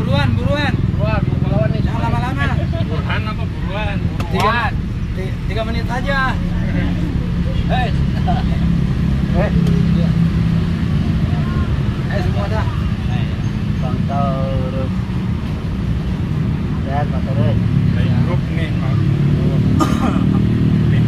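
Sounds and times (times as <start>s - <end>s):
low mechanical rumble: 0.0s - 19.3s
indistinct voices talking: 0.0s - 21.0s.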